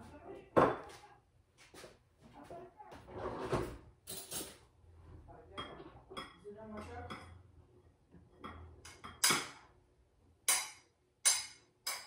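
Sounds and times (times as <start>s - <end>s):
dishes and cutlery clinking: 3.5s - 4.6s, 5.5s - 7.4s, 8.2s - 9.6s, 10.5s - 12.0s
dishes clattering: 5.6s - 7.4s, 8.2s - 9.6s.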